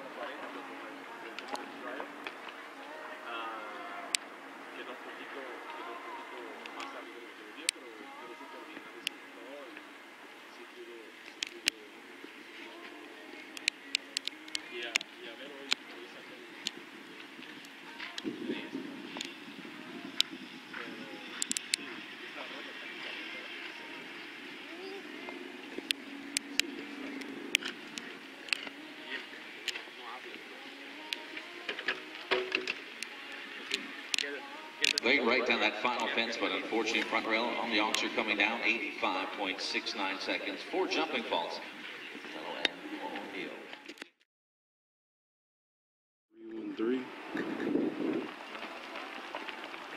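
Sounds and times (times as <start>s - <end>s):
spectators chattering: 0.0s - 44.0s, 46.5s - 49.9s.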